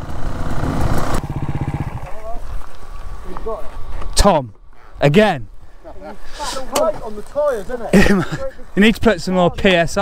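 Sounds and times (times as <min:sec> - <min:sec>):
dirt bike engine idling: 0:00.0 - 0:03.4.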